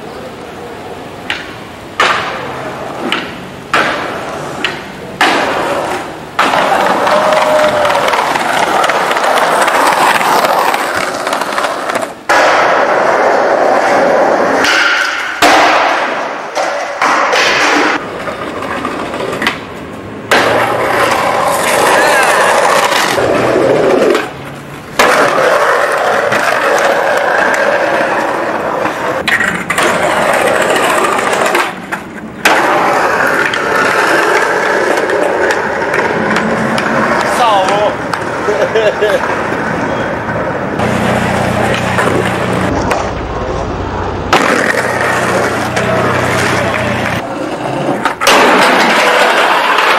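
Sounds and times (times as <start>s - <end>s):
skateboard wheels rolling on concrete: 0.0s - 49.9s
skateboard clattering: 0.6s - 49.9s.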